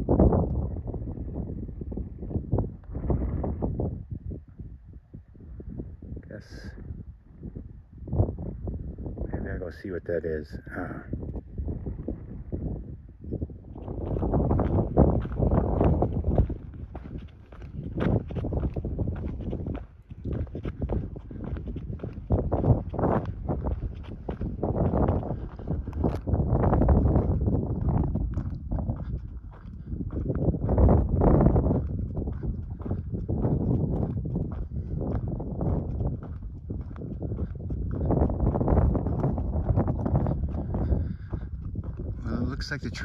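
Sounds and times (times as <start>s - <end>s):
wind on microphone: 0.0s - 43.0s
footsteps on gravel: 13.8s - 43.0s.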